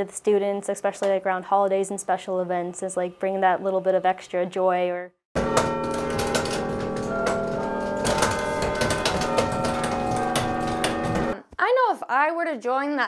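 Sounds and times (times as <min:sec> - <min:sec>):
chime bells ringing a tune: 0:05.4 - 0:11.4
wooden levers clattering: 0:05.4 - 0:11.4.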